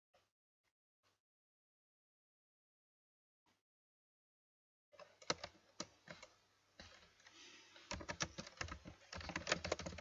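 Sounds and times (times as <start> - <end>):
keyboard typing: 5.0 - 10.0.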